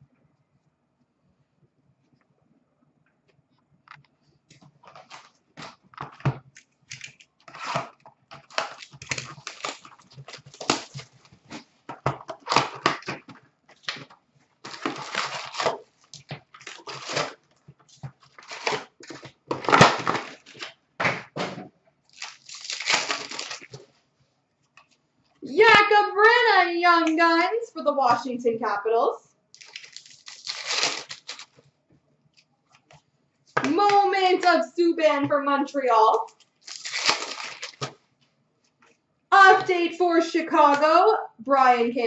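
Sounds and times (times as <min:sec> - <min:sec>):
wrappers tearing and crinkling: 0:04.8 - 0:05.8, 0:06.6 - 0:11.7, 0:12.3 - 0:17.4, 0:18.0 - 0:20.8, 0:22.1 - 0:23.9, 0:29.6 - 0:31.6, 0:36.2 - 0:38.0
cards shuffled in hands: 0:29.6 - 0:31.6.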